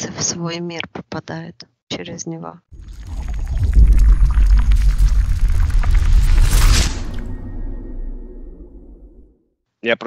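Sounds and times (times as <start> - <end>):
sparkly crackles: 2.8 - 8.2
deep cinematic rumble: 2.8 - 9.4.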